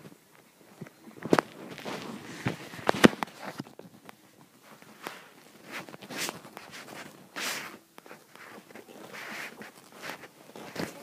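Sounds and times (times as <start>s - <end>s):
rustling of bedding: 0.0s - 11.0s.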